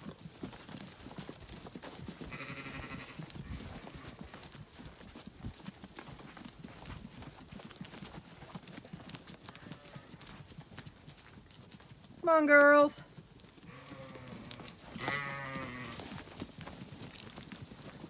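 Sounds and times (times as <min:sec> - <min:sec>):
hooves stepping on grass: 0:00.0 - 0:18.0
sheep bleat: 0:02.3 - 0:04.4, 0:09.5 - 0:10.2, 0:13.6 - 0:16.0.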